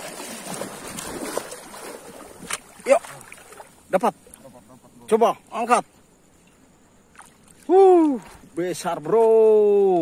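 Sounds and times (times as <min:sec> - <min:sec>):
person wading through seawater: 0:00.0 - 0:03.8.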